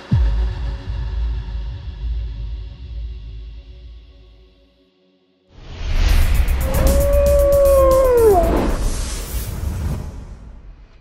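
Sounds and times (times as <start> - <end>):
low rumbling music: 5.6 - 8.9
wolf howl: 6.6 - 8.8.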